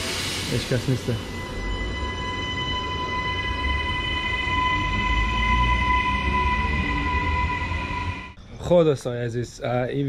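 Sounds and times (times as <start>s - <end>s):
electric train whine and rumble: 0.0s - 8.5s.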